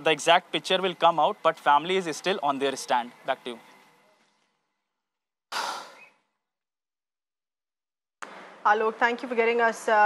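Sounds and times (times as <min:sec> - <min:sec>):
close exhale into microphone: 0:05.5 - 0:06.2.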